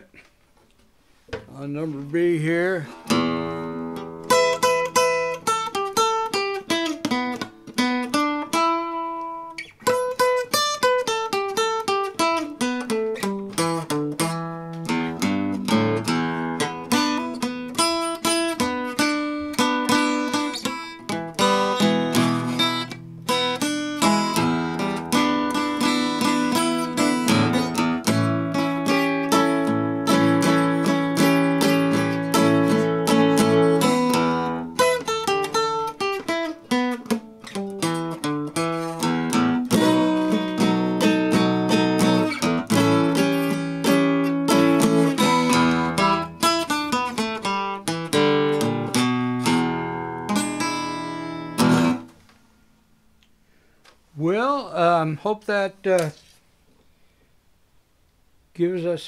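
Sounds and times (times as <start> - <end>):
acoustic guitar picked with a pick: 1.3 - 56.3.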